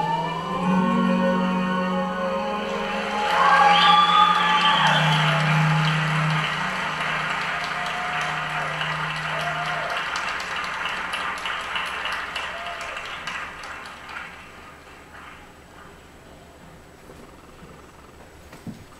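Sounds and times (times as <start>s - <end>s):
audience cheering: 2.4s - 15.2s
audience applause: 2.7s - 16.1s.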